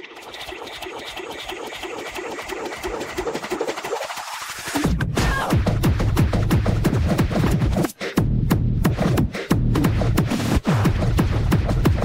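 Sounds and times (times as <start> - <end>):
heavy fast kick drum and bass: 4.7 - 12.0.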